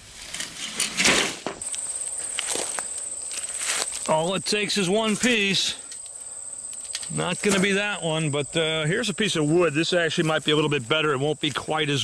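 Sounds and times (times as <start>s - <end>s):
footsteps in dry grass and leaves: 1.6s - 8.0s, 9.3s - 12.0s
high-pitched insect trill: 1.6s - 12.0s.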